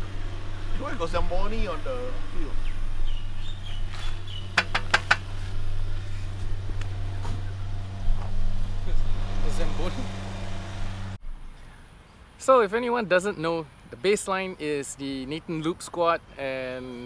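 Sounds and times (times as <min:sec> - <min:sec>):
vehicle engine idling: 0:00.0 - 0:11.2.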